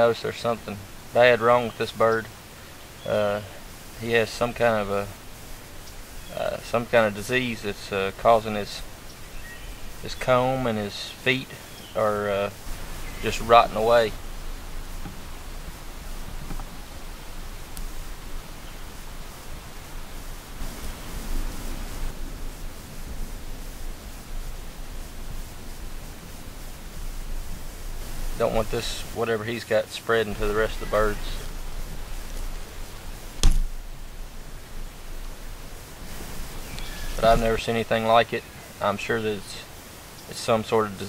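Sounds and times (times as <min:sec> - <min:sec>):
even hiss: 0:00.0 - 0:41.0
sharp knock: 0:33.4 - 0:33.8
faint click: 0:36.7 - 0:36.9.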